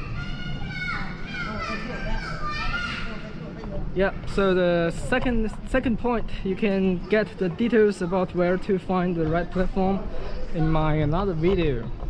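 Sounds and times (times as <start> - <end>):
children shouting and chattering: 0.0 - 12.0.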